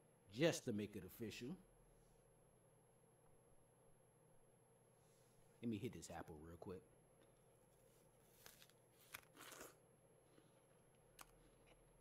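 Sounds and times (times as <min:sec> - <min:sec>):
soft rustle: 0:07.6 - 0:09.2.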